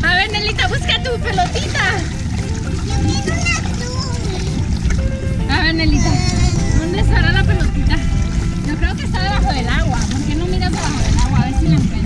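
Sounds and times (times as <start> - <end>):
low rumble: 0.0 - 12.0
high wavering voices: 1.0 - 8.9.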